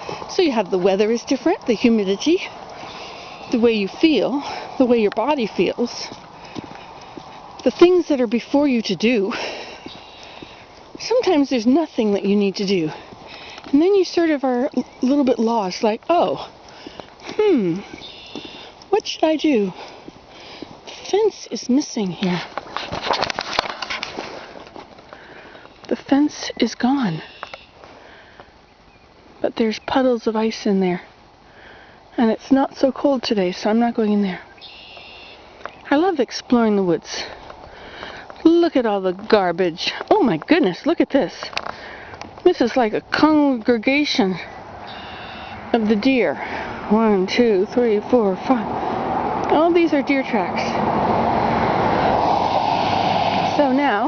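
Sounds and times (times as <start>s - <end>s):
crackling clicks and rustles: 0.0s - 26.5s, 34.4s - 44.5s
vehicle passing on road: 44.5s - 54.0s.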